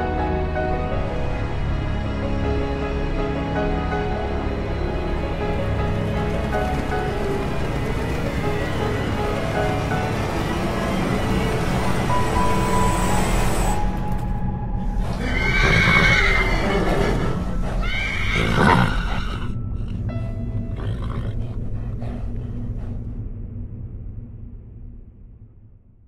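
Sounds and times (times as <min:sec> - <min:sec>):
film score music: 0:00.0 - 0:26.0
horse whinnying: 0:15.1 - 0:19.9.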